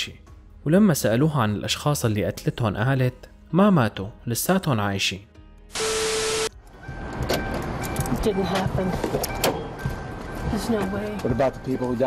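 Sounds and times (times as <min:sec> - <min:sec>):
tv static hiss with tone: 0:05.8 - 0:06.5
people talking: 0:08.2 - 0:09.3, 0:10.5 - 0:12.0.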